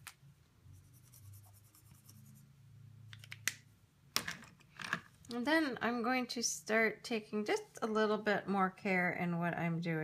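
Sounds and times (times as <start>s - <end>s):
marker scribbling on mat: 0.7s - 2.5s.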